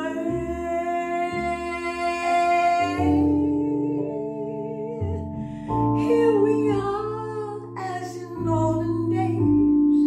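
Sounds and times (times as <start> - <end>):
woman singing with vibrato: 0.0 - 9.4.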